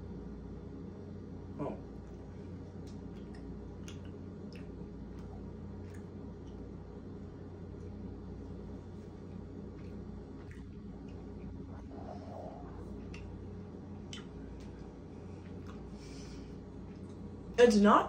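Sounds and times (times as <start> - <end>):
low room hum: 0.0 - 18.0
chewing mouth clicks: 2.8 - 6.6, 9.8 - 16.0.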